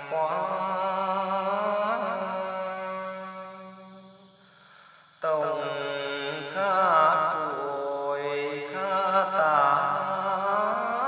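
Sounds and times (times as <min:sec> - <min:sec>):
slow sung vocal notes: 0:00.0 - 0:11.0.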